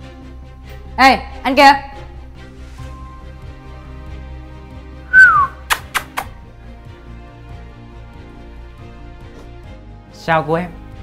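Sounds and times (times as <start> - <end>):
background music: 0.0 - 11.0
descending whistle: 5.1 - 5.7
sharp clicks: 5.2 - 6.3.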